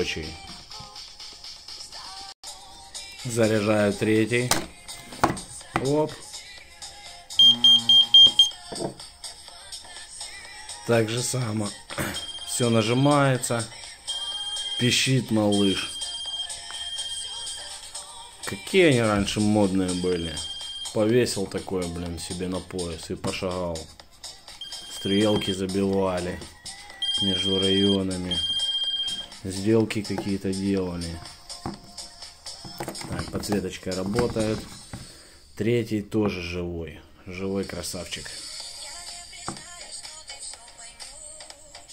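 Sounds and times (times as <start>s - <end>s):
pager high-pitched beeps: 7.4s - 8.6s, 14.4s - 17.3s, 24.6s - 25.7s, 27.0s - 29.3s.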